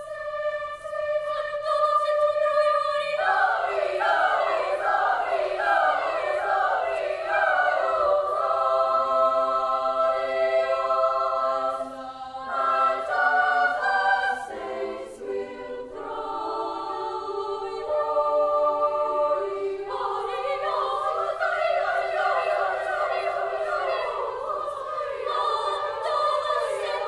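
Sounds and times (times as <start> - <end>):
girls' choir singing: 0.0 - 27.0.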